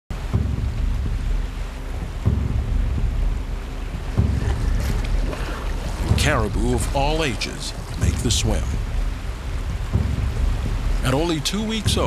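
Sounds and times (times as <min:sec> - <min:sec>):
river water washing: 0:00.1 - 0:12.0
wind: 0:00.1 - 0:12.0.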